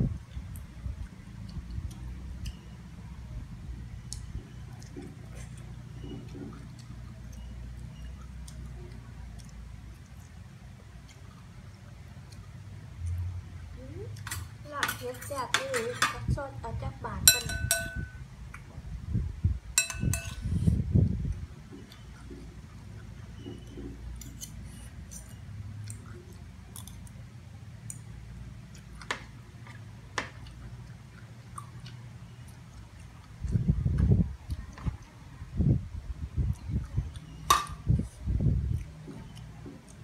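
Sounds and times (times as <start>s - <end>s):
low steady hum: 0.0s - 40.0s
cutlery clinking on a plate: 17.3s - 18.2s, 19.8s - 20.4s
eating by hand clicks: 23.6s - 27.2s.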